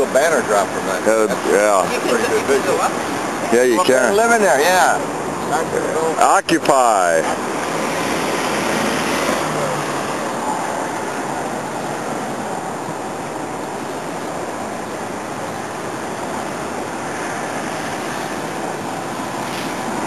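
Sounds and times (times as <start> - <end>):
street traffic hiss: 0.0 - 20.0.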